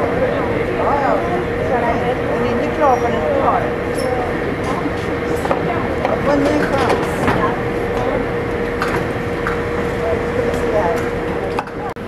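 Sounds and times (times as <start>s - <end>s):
factory machinery humming: 0.0s - 12.0s.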